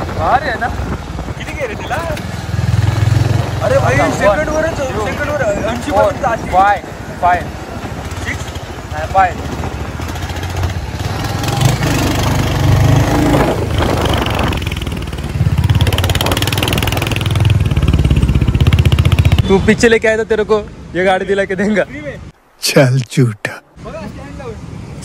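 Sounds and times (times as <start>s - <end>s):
motorcycle engine revving: 2.1s - 4.4s, 9.4s - 19.6s.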